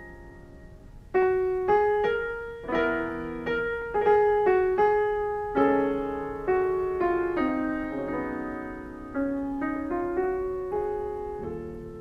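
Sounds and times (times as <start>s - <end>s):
slow ringing piano notes: 0.0s - 12.0s.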